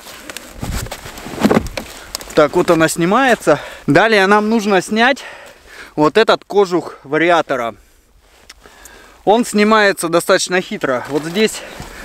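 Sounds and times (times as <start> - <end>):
plastic panel handling rustle: 0.0 - 3.4.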